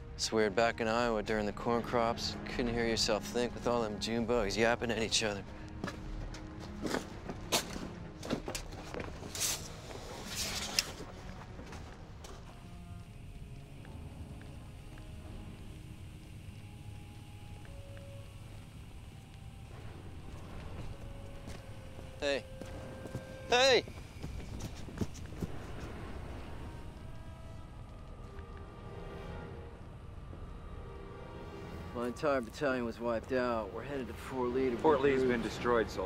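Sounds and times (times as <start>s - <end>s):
faint music with held notes: 0.0s - 36.0s.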